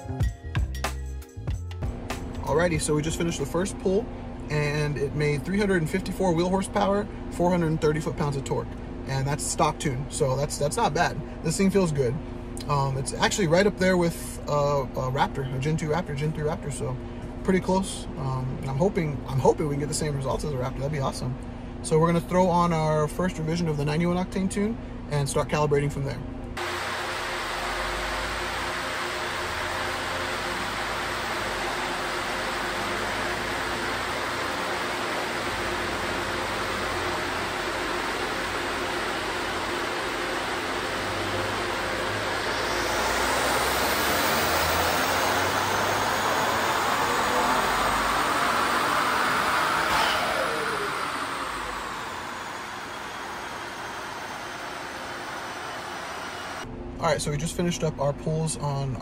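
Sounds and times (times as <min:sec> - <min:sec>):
car engine on dyno revving: 0:01.8 - 0:20.7, 0:26.6 - 0:56.7
turbo whine: 0:26.6 - 0:56.7.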